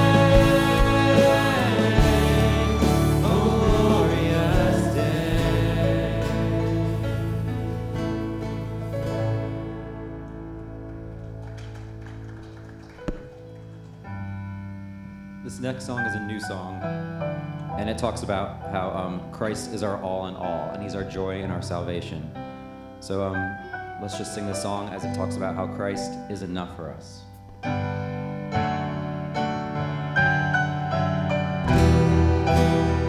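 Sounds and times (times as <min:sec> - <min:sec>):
acoustic guitar chords: 0:00.0 - 0:12.0, 0:27.4 - 0:33.0
keyboard chords: 0:00.0 - 0:33.0.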